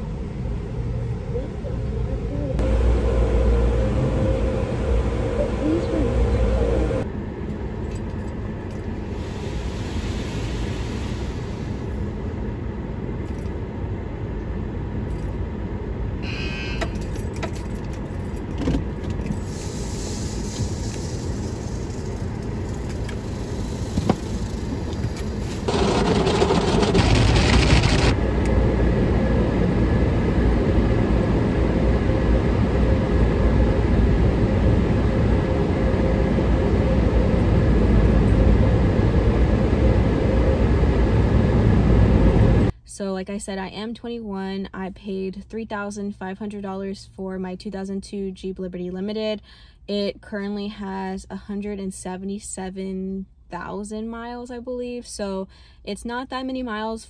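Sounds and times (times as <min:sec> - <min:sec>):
car wash machinery running: 0:00.0 - 0:09.8, 0:18.5 - 0:42.7
deep rumble: 0:00.0 - 0:42.7.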